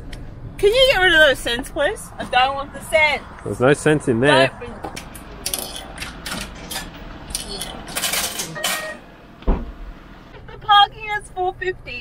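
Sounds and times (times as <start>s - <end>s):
pay machine rattles and clicks: 5.5s - 9.0s
machine thump: 9.4s - 9.9s.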